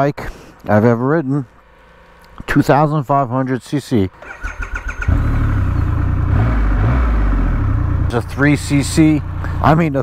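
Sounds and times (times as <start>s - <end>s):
engine starter cranking: 4.2s - 5.8s
motorcycle engine idling: 4.2s - 10.0s.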